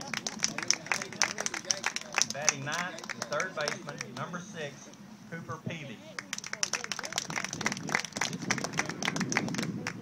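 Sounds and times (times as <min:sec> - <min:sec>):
crowd clapping: 0:00.0 - 0:04.3, 0:06.2 - 0:10.0.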